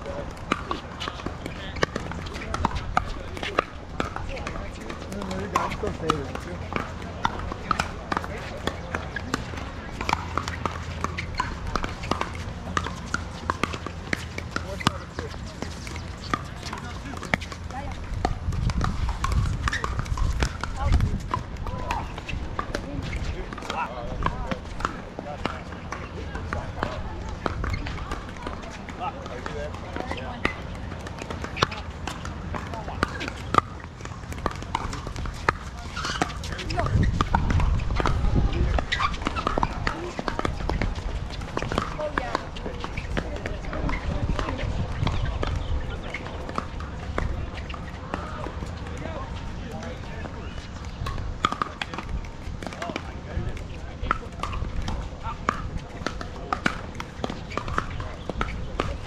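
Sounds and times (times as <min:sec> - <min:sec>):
players' voices: 0:00.0 - 0:59.0
paddles hitting plastic ball: 0:00.2 - 0:59.0.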